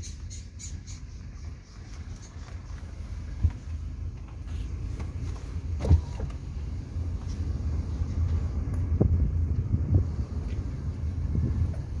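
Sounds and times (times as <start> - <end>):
wind buffeting microphone: 6.9 - 12.0.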